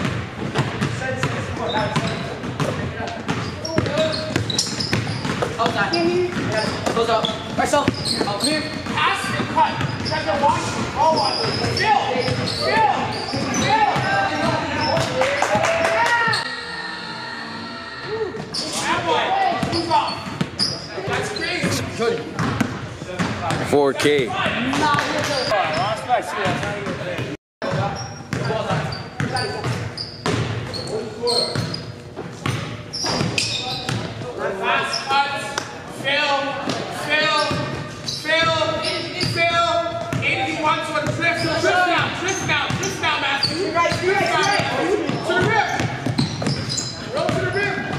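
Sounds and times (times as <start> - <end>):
basketballs bouncing on wooden floor: 0.0 - 15.6, 21.6 - 23.7, 24.4 - 30.8, 32.4 - 34.2, 42.0 - 47.9.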